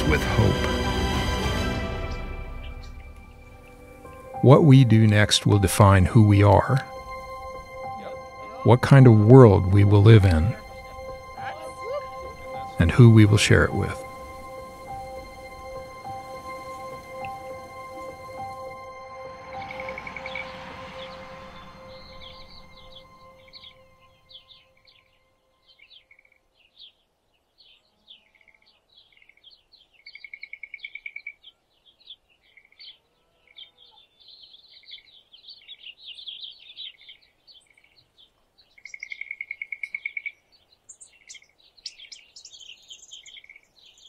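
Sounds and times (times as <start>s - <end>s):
music: 0.0s - 25.8s
songbirds chirping and singing: 0.0s - 44.0s.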